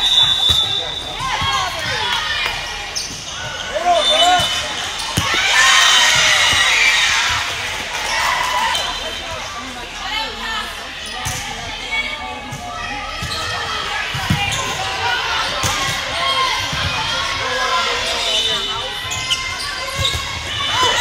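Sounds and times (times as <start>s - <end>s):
volleyball hits: 4.2s - 7.9s.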